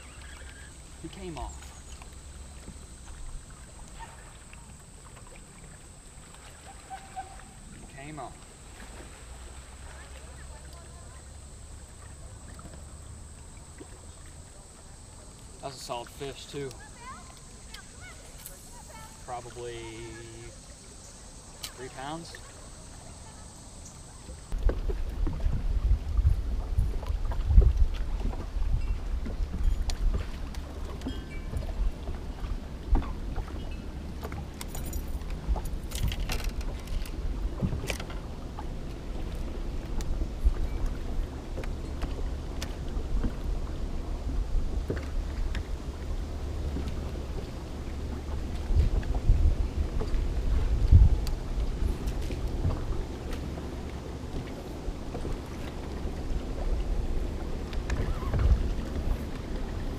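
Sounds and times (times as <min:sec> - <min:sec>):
wind buffeting microphone: 0:24.4 - 0:59.9
fishing tackle clicks and rattles: 0:34.5 - 0:37.2.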